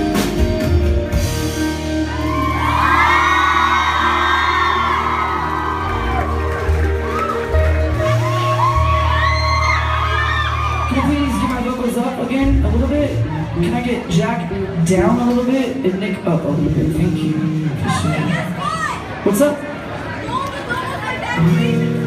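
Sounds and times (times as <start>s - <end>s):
live rock band playing: 0.0s - 19.2s, 20.9s - 22.0s
crowd whooping and screaming: 1.6s - 12.2s.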